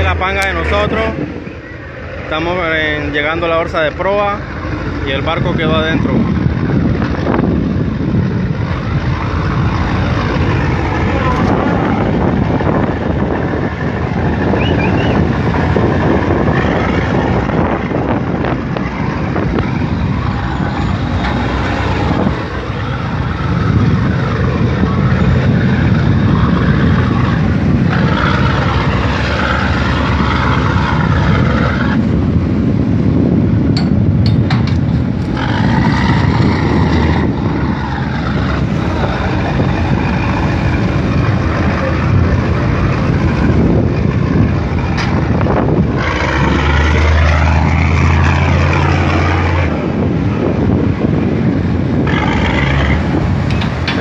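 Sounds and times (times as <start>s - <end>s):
helicopter rotor: 0.0s - 32.4s
boat engines droning: 0.0s - 54.0s.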